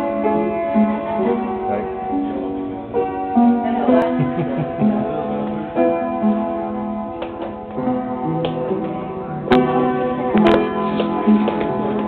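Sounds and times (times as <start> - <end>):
piano notes and chords: 0.0 - 12.0.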